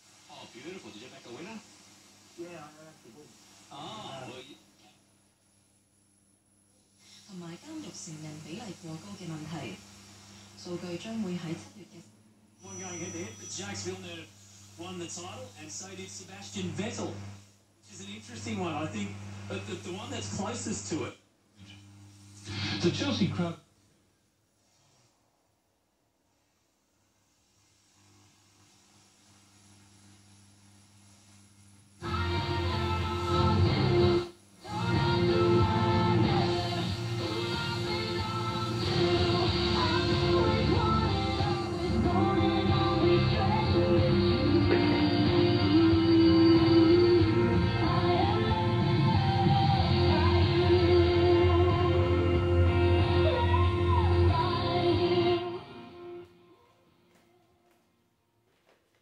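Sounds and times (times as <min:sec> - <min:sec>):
radio music with guitar: 0:00.0 - 0:05.0, 0:12.6 - 0:23.5, 0:31.2 - 0:57.9
faint radio hum: 0:00.0 - 0:25.1.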